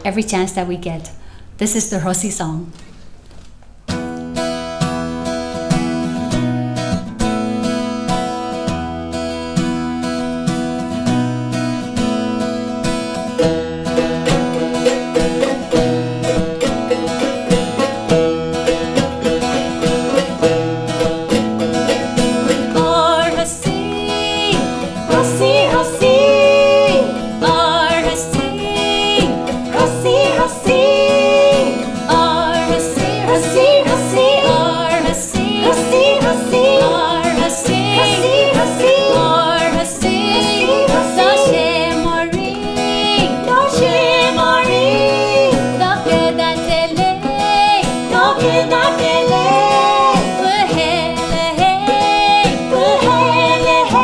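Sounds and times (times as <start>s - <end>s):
acoustic guitar: 0.0s - 54.0s
plucked lutes: 2.7s - 54.0s
women singing: 21.8s - 54.0s.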